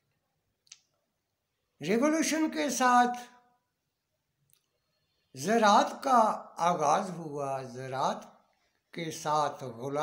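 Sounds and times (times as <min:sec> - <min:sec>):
man speaking: 0:01.8 - 0:03.4, 0:05.4 - 0:10.0.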